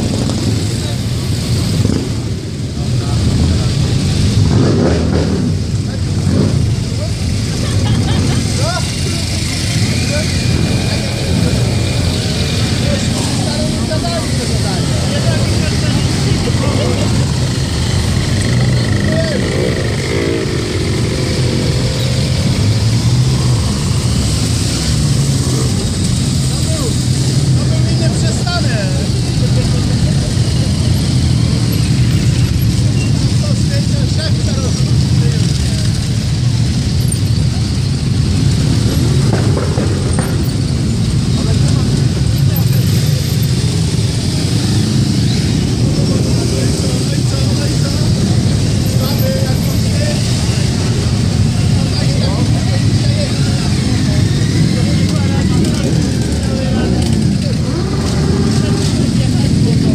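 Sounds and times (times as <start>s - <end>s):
motorcycle engines droning: 0.0s - 59.9s.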